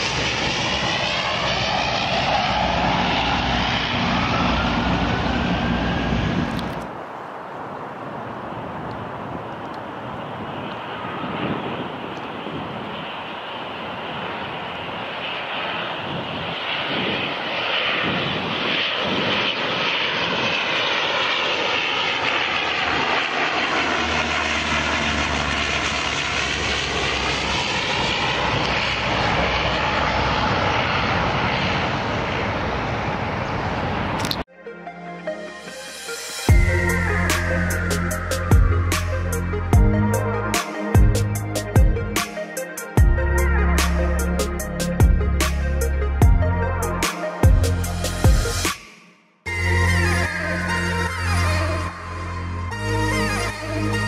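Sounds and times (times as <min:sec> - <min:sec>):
turboprop aircraft engines: 0:00.0 - 0:54.0.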